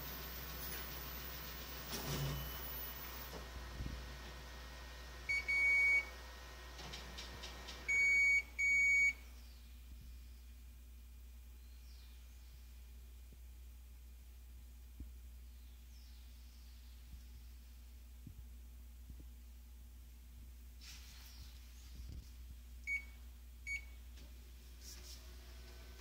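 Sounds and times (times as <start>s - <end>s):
copier background noise: 0.0s - 9.3s
copier control panel beeping: 0.1s - 3.3s, 5.3s - 6.1s, 7.6s - 9.2s.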